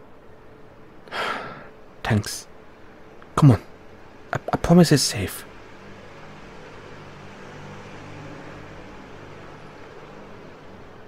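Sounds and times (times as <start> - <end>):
low constant hum: 0.0 - 11.0.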